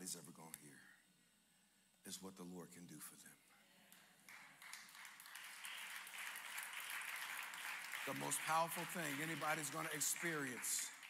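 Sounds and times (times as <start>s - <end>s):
congregation applauding: 4.2s - 11.0s.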